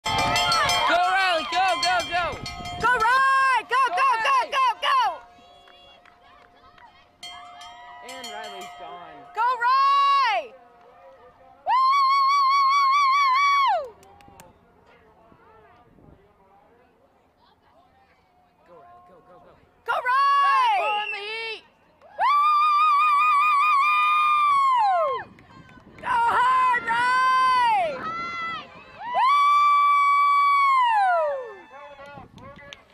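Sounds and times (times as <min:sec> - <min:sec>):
spectators cheering and yelling: 0:00.0 - 0:08.6, 0:20.0 - 0:32.3.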